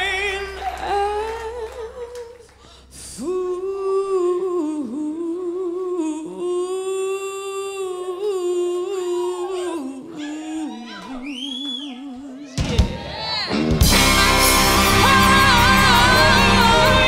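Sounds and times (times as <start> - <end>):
woman singing: 0.0 - 13.0, 13.9 - 17.0
band low end: 13.6 - 17.0.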